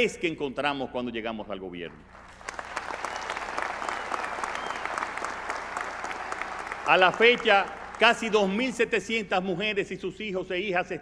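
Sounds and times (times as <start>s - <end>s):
audience applauding: 2.1s - 8.8s.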